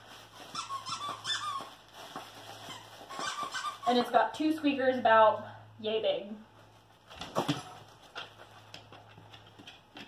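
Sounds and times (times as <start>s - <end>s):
plush toy crinkling: 0.0s - 4.0s.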